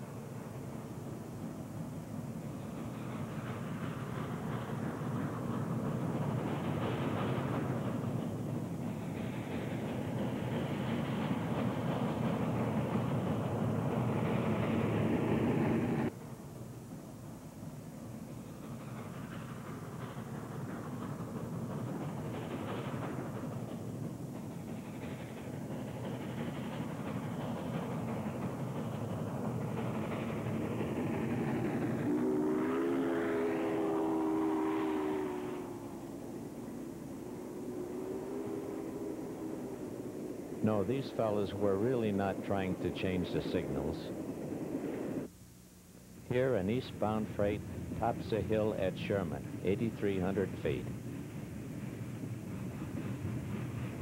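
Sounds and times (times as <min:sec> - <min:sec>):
steam locomotive rumbling: 0:00.0 - 0:45.4, 0:46.0 - 0:54.0
steam whistle blast: 0:32.0 - 0:36.2, 0:37.6 - 0:39.7.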